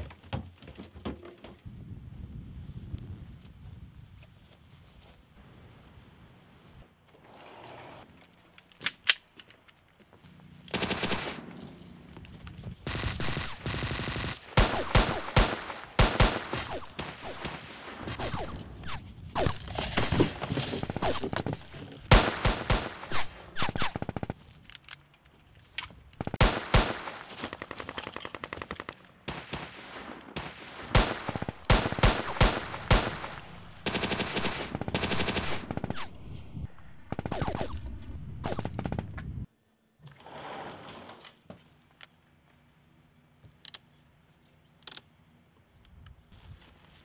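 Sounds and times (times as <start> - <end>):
automatic gunfire burst: 10.7 - 11.4, 12.9 - 20.1, 20.8 - 24.4, 26.2 - 36.2, 37.1 - 37.8, 38.4 - 39.1.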